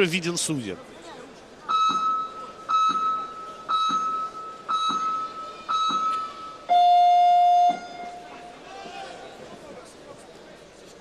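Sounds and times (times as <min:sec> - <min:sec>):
short high timer beeps: 0:01.7 - 0:08.4
long low timer beep: 0:01.7 - 0:08.6.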